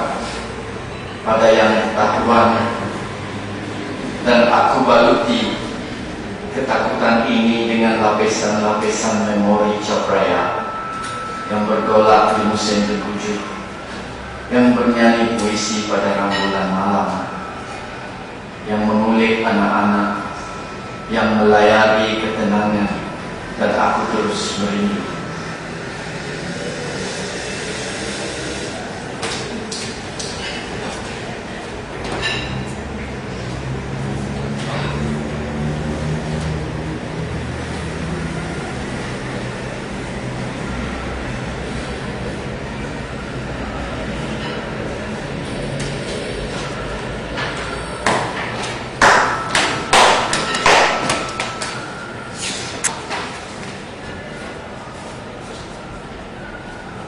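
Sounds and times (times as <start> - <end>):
steady rushing noise: 0.0 - 30.3.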